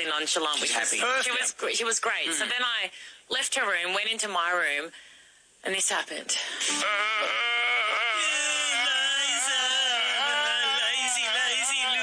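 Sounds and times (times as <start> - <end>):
person wailing: 6.7 - 12.0.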